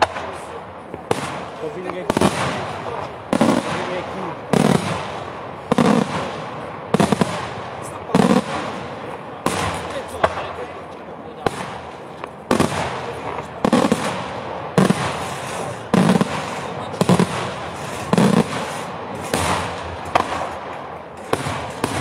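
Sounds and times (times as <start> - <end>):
lighter firework cracks: 0.0 - 22.0
firework shells bursting: 11.5 - 22.0.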